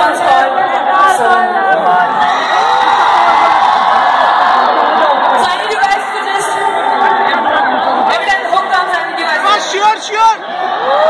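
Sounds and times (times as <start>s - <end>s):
crowd voices talking and calling: 0.0s - 11.0s.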